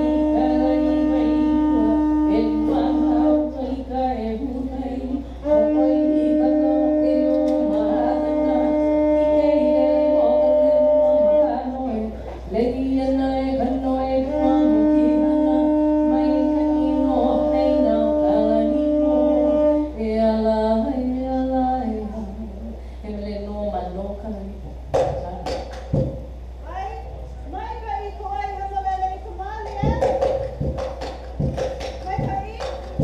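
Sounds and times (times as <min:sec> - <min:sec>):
conch shell trumpet blasts: 0:00.0 - 0:03.6, 0:14.2 - 0:20.0.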